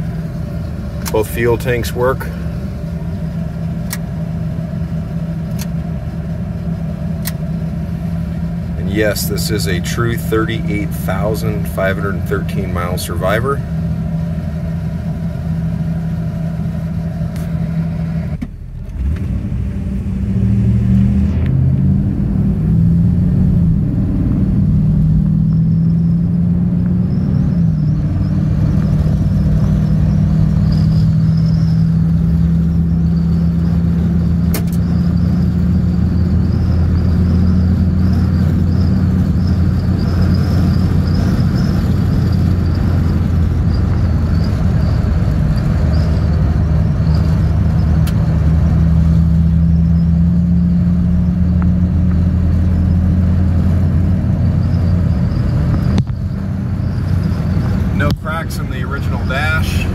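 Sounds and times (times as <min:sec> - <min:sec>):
pickup engine accelerating and cruising: 0:00.0 - 0:59.9.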